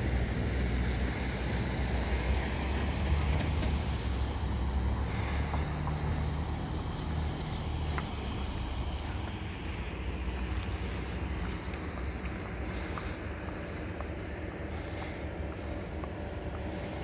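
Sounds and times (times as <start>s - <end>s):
vehicle rumble and road noise: 0.0s - 17.0s.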